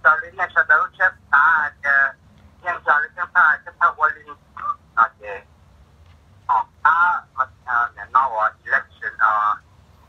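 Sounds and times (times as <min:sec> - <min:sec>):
speech over telephone line: 0:00.0 - 0:05.5, 0:06.4 - 0:09.6.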